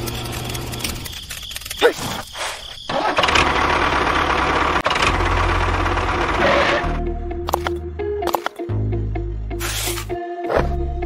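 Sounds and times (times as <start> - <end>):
engine running with rattling: 2.9 - 7.0.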